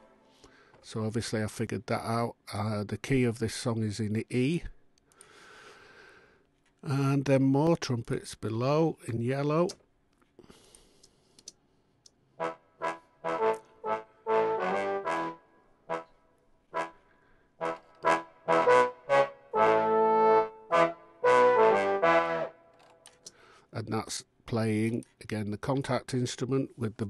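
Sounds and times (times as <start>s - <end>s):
big-band trumpet section chords: 12.4s - 17.0s, 17.6s - 22.6s.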